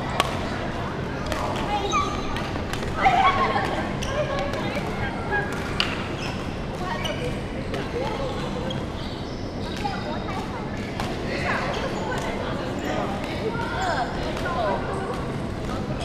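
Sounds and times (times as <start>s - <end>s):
voices in background: 0.0s - 16.0s.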